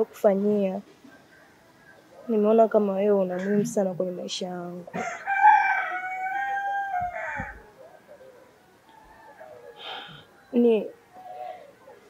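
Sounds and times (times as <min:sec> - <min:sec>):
rooster crowing: 0:04.9 - 0:10.5.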